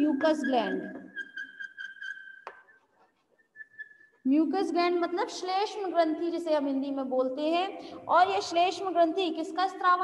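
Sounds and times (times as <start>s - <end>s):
chalk squealing on blackboard: 0.6s - 4.1s
chalk stroke ticks: 1.2s - 4.0s
chalk tap: 2.4s - 3.4s.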